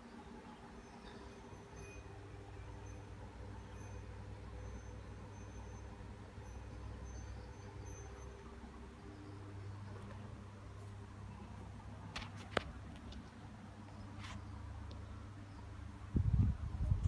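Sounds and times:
faint high-pitched chirps: 0.0s - 10.3s
faint low hum: 0.0s - 17.0s.

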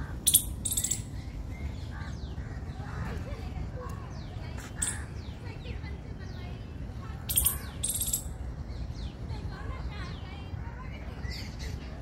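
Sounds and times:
harsh high-pitched bird calls: 0.0s - 2.9s, 4.6s - 5.4s, 7.2s - 8.5s.

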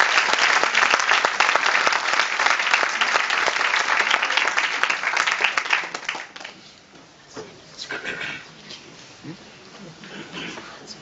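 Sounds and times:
scattered applause: 0.0s - 6.6s
faint audience noises: 0.0s - 11.0s.

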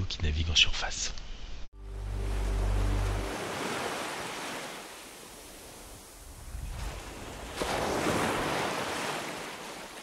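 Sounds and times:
sea waves washing in: 1.8s - 10.0s.

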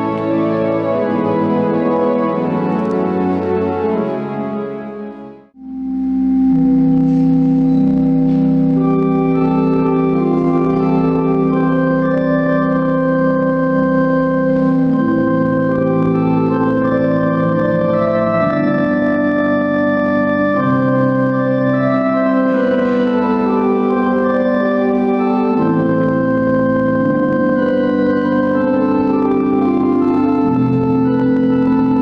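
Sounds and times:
pipe organ chords: 0.0s - 32.0s
deep bass organ note: 5.5s - 32.0s.

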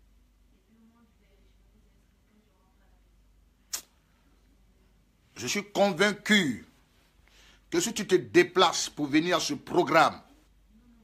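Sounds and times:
short sharp hiss: 3.7s - 4.0s.

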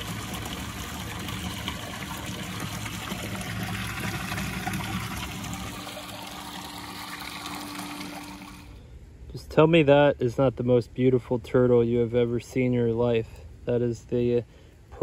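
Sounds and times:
water trickling and splashing: 0.0s - 8.7s
faint steady hum: 0.0s - 15.0s.

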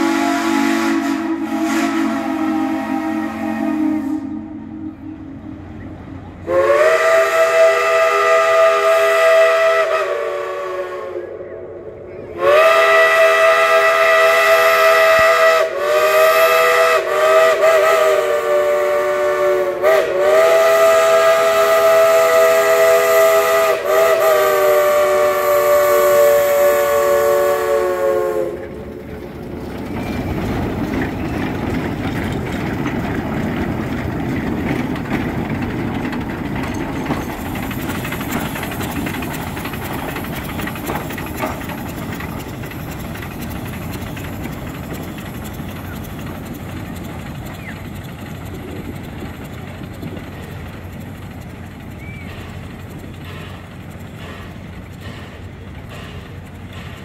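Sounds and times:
locomotives rumbling past: 0.0s - 11.2s, 11.9s - 57.0s
steam locomotive chime whistle: 0.0s - 28.9s.

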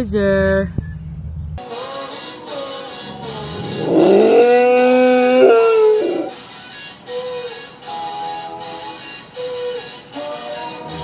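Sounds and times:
dog howling: 3.2s - 6.4s.

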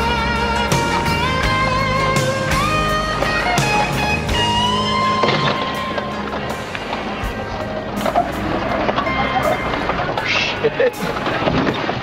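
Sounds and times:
rock song playing: 0.0s - 11.3s
off-road vehicle engine climbing: 0.0s - 12.0s.

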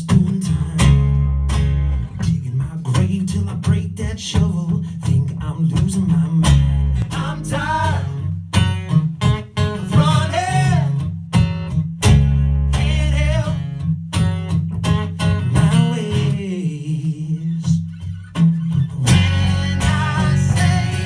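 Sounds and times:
electric bass line: 0.0s - 4.6s, 5.2s - 16.4s, 17.1s - 21.0s
acoustic guitars strummed: 0.0s - 21.0s
people singing into microphones: 7.1s - 8.3s, 18.9s - 21.0s.

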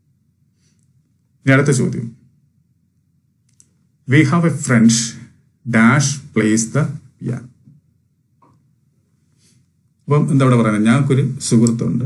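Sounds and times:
man speaking a syllable: 4.1s - 7.5s.

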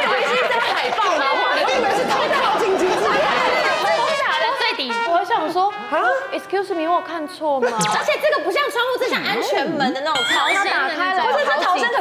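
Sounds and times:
people laughing: 0.0s - 4.8s, 7.6s - 12.0s
people talking over one another: 0.0s - 5.3s.

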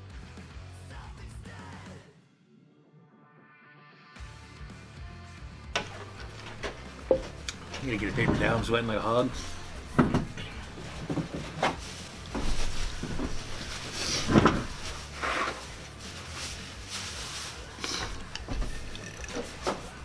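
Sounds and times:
wooden chair knocks and clicks: 5.8s - 8.8s, 9.9s - 13.4s, 14.3s - 14.7s
paper towel rustling: 7.7s - 18.3s.

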